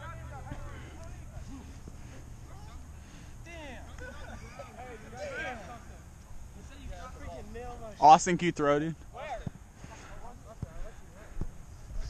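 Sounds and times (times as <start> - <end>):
players calling out: 0.0 - 11.5.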